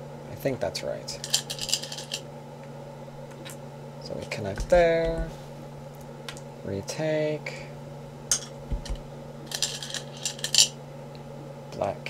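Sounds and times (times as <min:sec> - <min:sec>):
stones clinking in a bowl: 0:01.2 - 0:02.2, 0:08.3 - 0:10.8.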